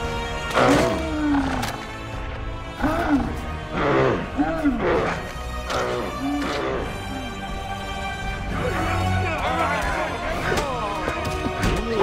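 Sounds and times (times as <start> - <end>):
dramatic orchestral music: 0.0 - 12.0.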